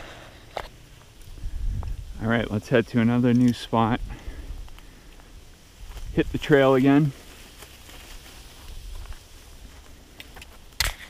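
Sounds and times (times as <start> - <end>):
footsteps on leaf litter: 0.0 - 10.8.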